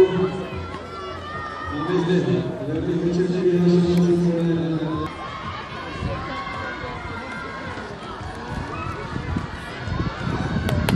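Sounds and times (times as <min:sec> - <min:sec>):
indistinct chatter: 0:00.0 - 0:10.9.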